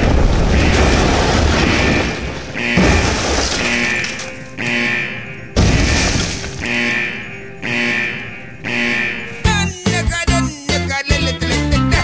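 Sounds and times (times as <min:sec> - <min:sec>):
crashes: 0:00.0 - 0:04.7, 0:05.6 - 0:06.8.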